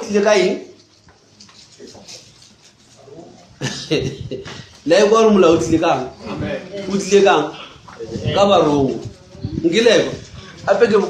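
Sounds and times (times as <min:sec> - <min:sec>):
man preaching: 0:00.0 - 0:00.8, 0:04.9 - 0:09.0, 0:09.6 - 0:11.0.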